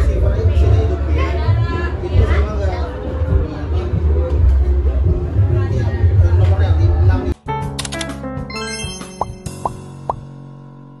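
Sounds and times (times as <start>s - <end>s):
outro music: 8.3s - 10.3s
rising pop sound effects: 8.5s - 10.2s.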